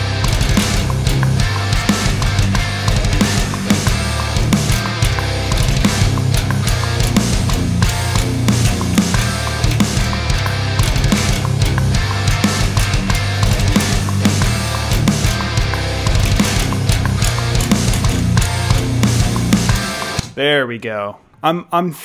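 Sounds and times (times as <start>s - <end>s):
electric bass: 0.0s - 20.3s
distorted rhythm guitar: 0.0s - 20.4s
programmed drums: 0.0s - 20.4s.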